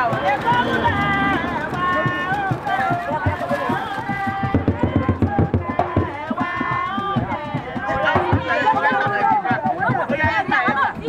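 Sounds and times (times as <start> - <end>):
long drawn-out called notes: 0.0 - 4.1
people talking and calling out: 0.0 - 11.0.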